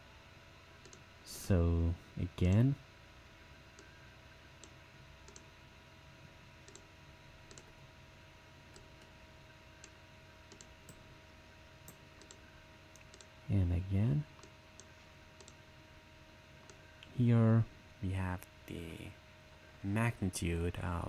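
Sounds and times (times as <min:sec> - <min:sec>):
low electrical hum: 0:00.0 - 0:21.0
computer mouse clicks: 0:00.8 - 0:01.0, 0:04.6 - 0:05.5, 0:06.6 - 0:06.9, 0:07.5 - 0:07.7, 0:09.8 - 0:11.0, 0:11.8 - 0:13.3, 0:14.4 - 0:15.6.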